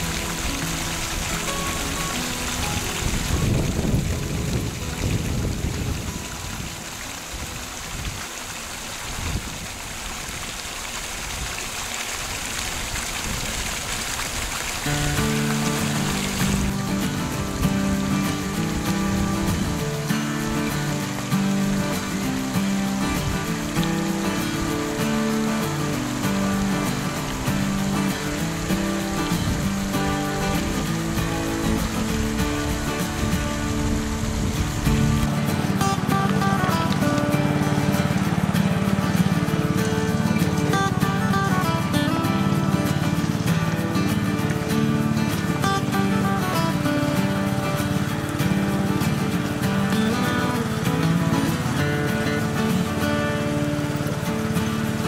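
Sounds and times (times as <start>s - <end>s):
water rushing and splashing: 0.0s - 55.0s.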